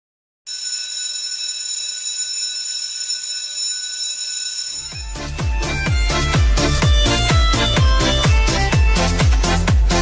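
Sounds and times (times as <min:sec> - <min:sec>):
high-pitched alarm tone: 0:00.5 - 0:05.4
music with heavy bass beat: 0:05.0 - 0:10.0.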